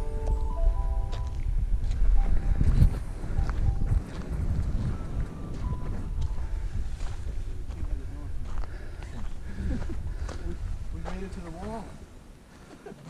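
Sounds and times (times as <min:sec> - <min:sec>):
wind buffeting microphone: 0:00.0 - 0:12.7.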